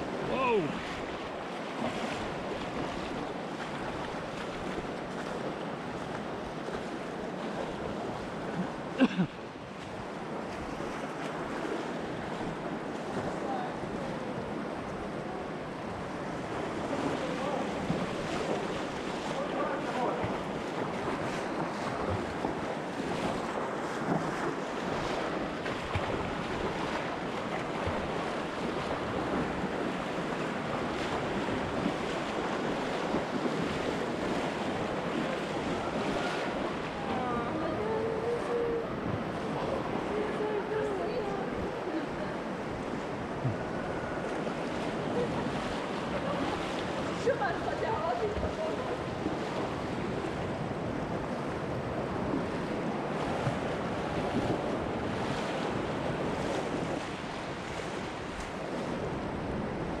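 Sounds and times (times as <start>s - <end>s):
splashing from wading: 0.0s - 9.2s, 16.9s - 42.2s
river current rushing: 0.0s - 60.0s
faint voices: 35.1s - 49.2s.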